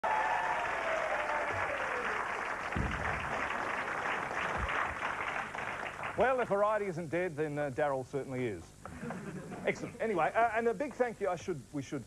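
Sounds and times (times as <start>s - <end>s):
audience applauding: 0.0s - 6.5s.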